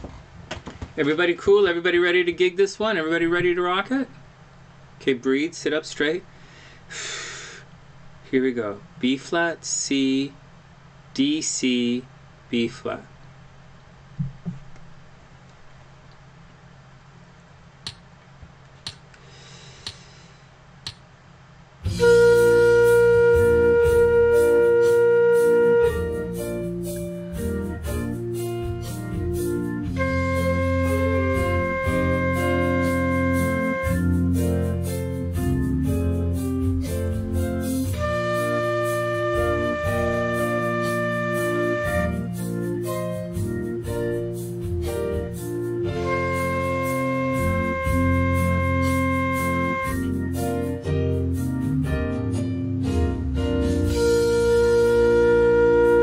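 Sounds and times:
drums bass and keyboard backing: 21.8s - 56.0s
flute playing long notes: 21.9s - 26.4s, 29.9s - 34.3s, 37.9s - 42.4s, 46.0s - 50.2s, 53.9s - 56.0s.

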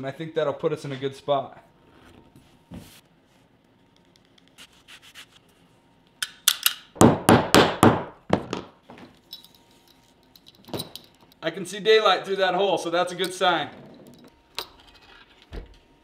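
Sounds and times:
leather edge rubbing strokes: 4.5s - 5.6s.

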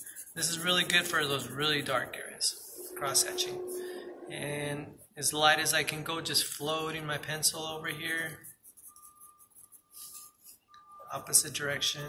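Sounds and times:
pencil hatching on paper: 0.0s - 3.9s
faint high whine: 0.4s - 5.0s.

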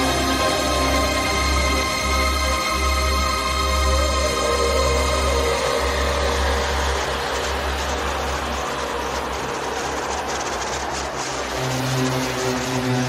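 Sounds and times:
low bass drone: 0.0s - 13.0s
synth chords: 0.0s - 13.0s
white noise sweep: 0.0s - 13.0s.

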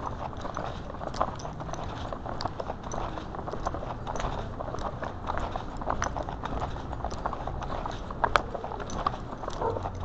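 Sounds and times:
footsteps on concrete: 0.0s - 10.0s.

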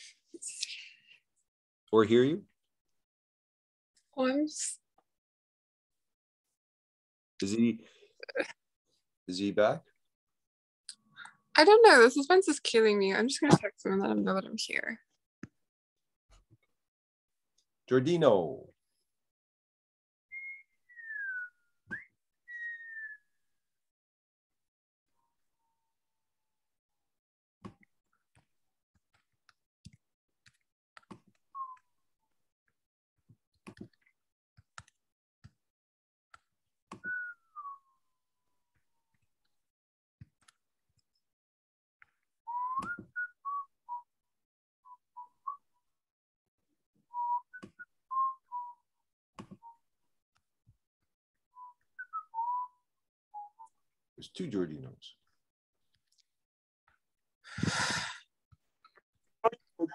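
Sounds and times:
person whistling: 20.3s - 23.2s, 37.0s - 37.8s, 42.5s - 43.6s, 52.1s - 52.8s
person whistling a tune: 37.0s - 37.8s, 42.5s - 43.6s, 52.1s - 52.8s.

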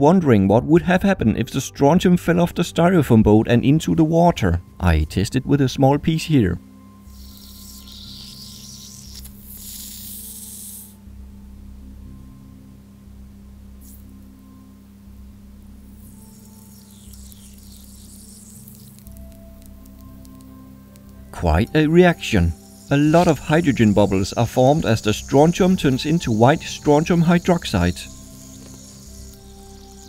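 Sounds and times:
metal fizzing in water: 21.7s - 30.0s.

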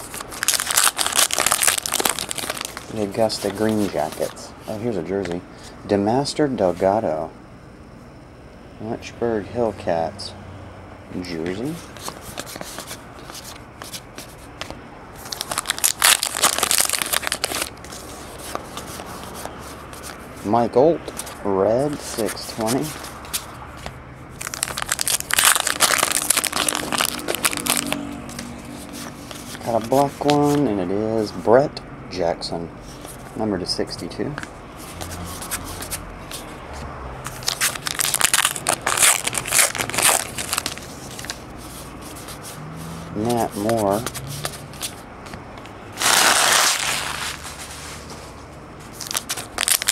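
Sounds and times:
wrapper tearing and crinkling: 0.0s - 4.4s, 15.2s - 17.8s, 24.4s - 30.0s, 37.3s - 41.4s, 46.0s - 47.8s, 49.0s - 49.9s
rustle of card and paper: 0.0s - 4.9s, 11.6s - 31.5s, 32.8s - 33.4s, 34.8s - 36.6s, 37.3s - 45.4s, 46.0s - 49.9s.

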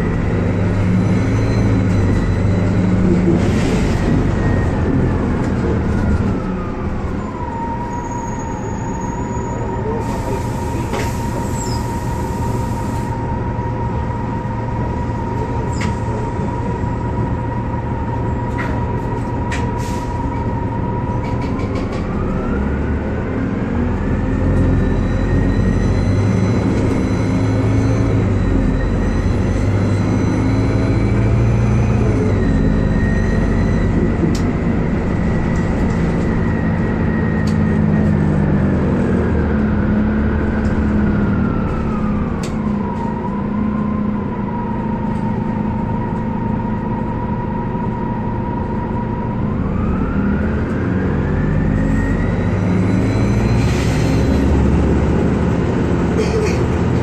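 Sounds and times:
bus engine whining: 0.0s - 57.0s
bus pulling away: 0.0s - 57.0s.

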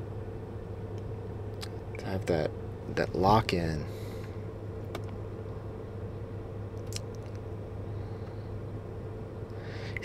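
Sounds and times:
car cabin hum: 0.0s - 7.9s.

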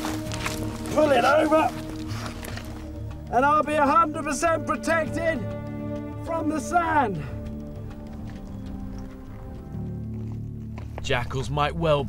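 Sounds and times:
low sustained music score: 0.0s - 12.0s.

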